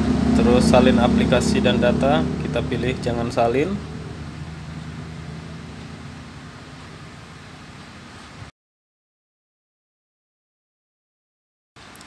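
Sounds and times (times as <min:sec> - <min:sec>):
low hum with hiss: 0:00.0 - 0:08.5.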